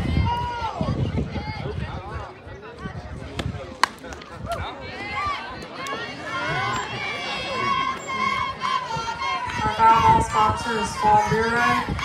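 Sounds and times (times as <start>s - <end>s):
bat striking ball: 3.8s - 4.3s.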